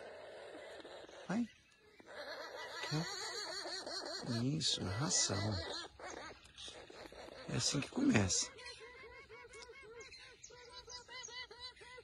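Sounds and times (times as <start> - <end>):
young toucans begging calls: 0.0 - 12.0.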